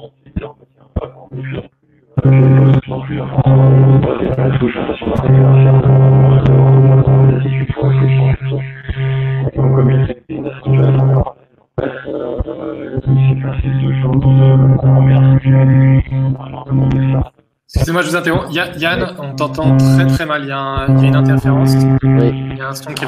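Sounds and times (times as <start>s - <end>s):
electronic buzzing drone: 2.2s - 11.3s, 12.7s - 17.3s, 18.4s - 20.2s, 20.8s - 22.7s.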